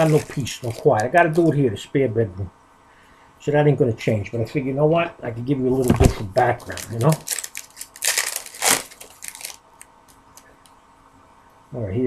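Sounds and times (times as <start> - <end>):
plastic packaging crinkling: 0.0 - 1.6, 5.8 - 10.5
cards clicking: 6.4 - 9.6.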